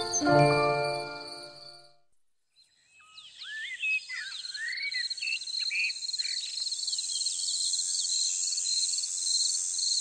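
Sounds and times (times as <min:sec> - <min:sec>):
birds chirping: 0:00.0 - 0:01.6.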